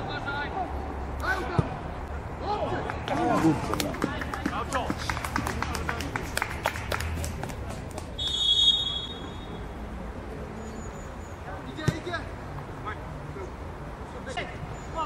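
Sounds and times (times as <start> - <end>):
referee's whistle blast: 8.2 - 9.6.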